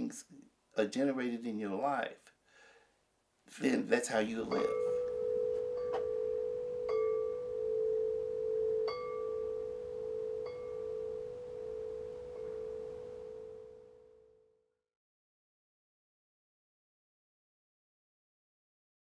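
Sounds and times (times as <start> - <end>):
metal wind chime ringing: 4.5 - 13.9.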